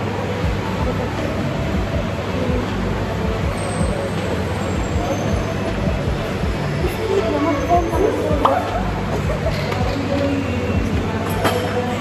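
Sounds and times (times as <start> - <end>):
faint voices: 0.0 - 12.0
rumbling gym background noise: 0.0 - 12.0.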